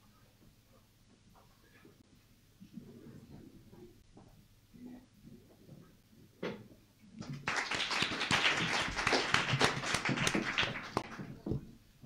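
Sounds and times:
audience applause: 7.3s - 11.4s.

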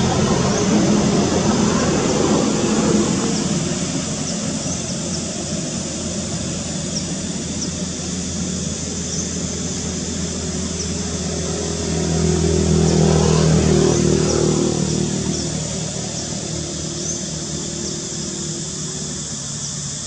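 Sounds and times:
motor vehicle driving past: 0.0s - 20.0s
steady high-pitched hiss: 0.0s - 20.0s.

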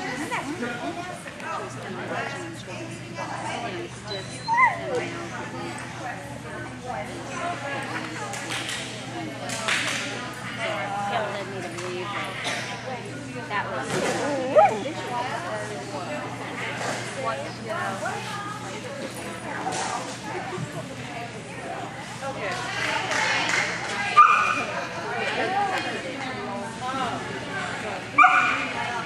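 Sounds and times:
people talking: 0.0s - 29.0s
people's voices: 0.0s - 29.0s
dog yipping: 4.1s - 5.0s, 28.2s - 28.6s
dog barking: 28.2s - 28.6s.

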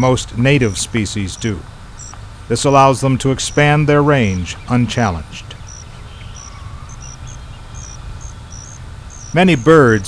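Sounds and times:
insects chirping: 0.0s - 10.0s
low marsh rumble: 0.0s - 10.0s.

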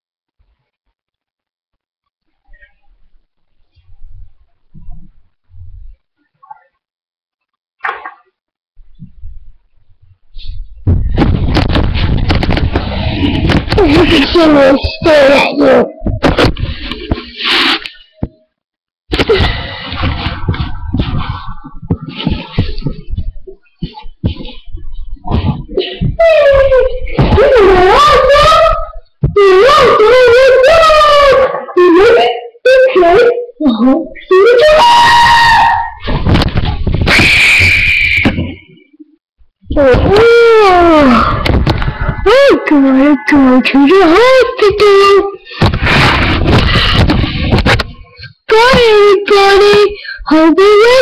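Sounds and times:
microphone handling rumble and knocks: 3.8s - 6.1s, 8.8s - 15.2s, 16.0s - 17.4s, 19.1s - 27.9s, 36.0s - 38.8s, 41.2s - 42.4s, 45.6s - 49.9s
child's voice: 13.8s - 16.1s, 25.4s - 34.5s, 42.2s - 45.4s, 48.5s - 51.0s.

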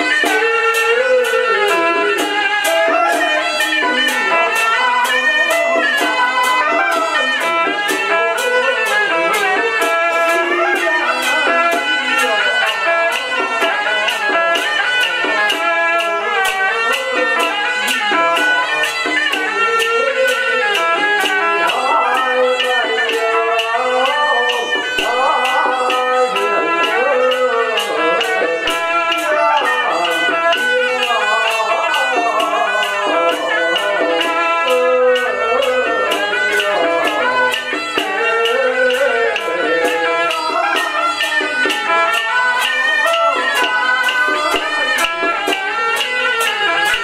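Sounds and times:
percussion beat: 0.0s - 47.0s
wind instrument melody: 0.0s - 47.0s.

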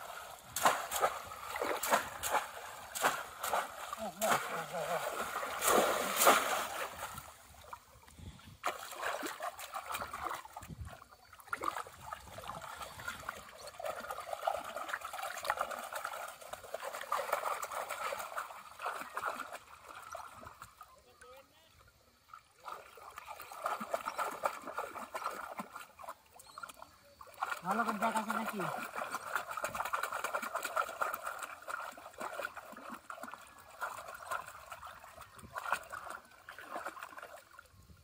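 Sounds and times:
muddy water sloshing and splashing: 0.0s - 38.0s.

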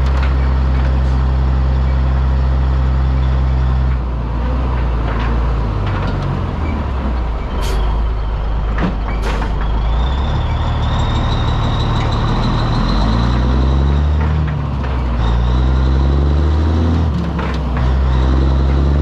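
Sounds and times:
diesel truck engine running: 0.0s - 19.0s
air brake hisses: 7.6s - 7.9s.

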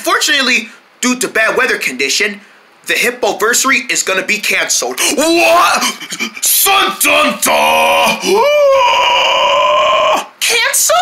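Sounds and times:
person wailing: 5.0s - 10.3s.

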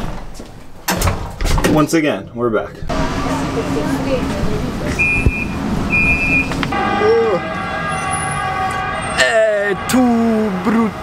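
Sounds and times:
tram drive whine: 2.9s - 11.0s
high electronic door beeps: 4.9s - 6.6s.

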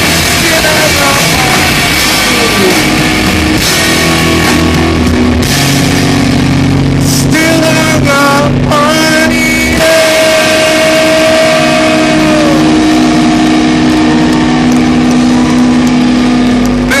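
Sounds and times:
electric guitar chords: 0.0s - 17.0s
singer holding long note: 7.0s - 17.0s.

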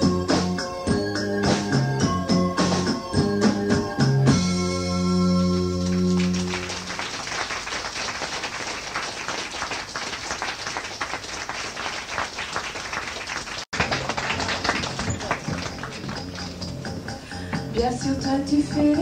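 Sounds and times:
audience applauding: 5.6s - 17.0s.

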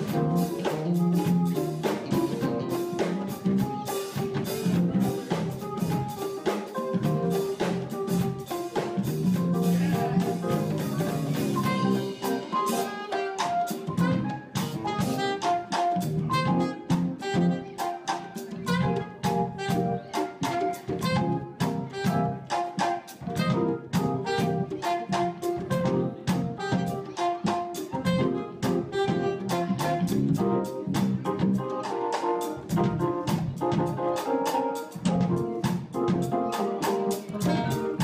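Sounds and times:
drum kit beat: 0.0s - 38.0s
guitar: 0.0s - 38.0s
soprano saxophone melody: 9.4s - 22.6s, 23.2s - 30.8s, 36.4s - 38.0s.

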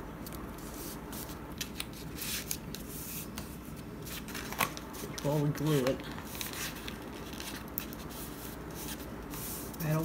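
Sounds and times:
paper rustling and rubbing: 0.5s - 10.0s.

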